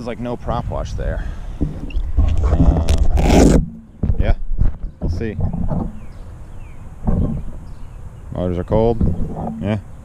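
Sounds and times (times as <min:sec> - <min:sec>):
wind: 0:00.0 - 0:10.0
microphone handling noise: 0:00.5 - 0:07.9, 0:08.9 - 0:09.9.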